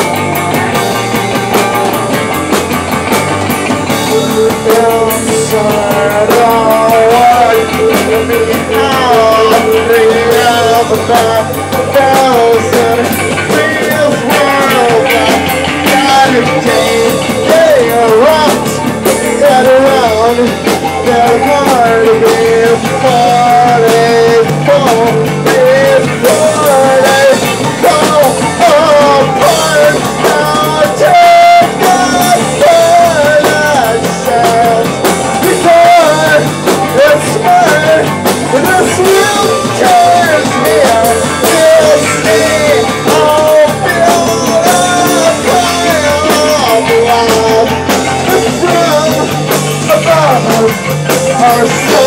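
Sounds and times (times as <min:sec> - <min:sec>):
drum kit: 0:00.0 - 0:52.0
electric guitar: 0:00.0 - 0:52.0
male singer shouting: 0:03.9 - 0:52.0.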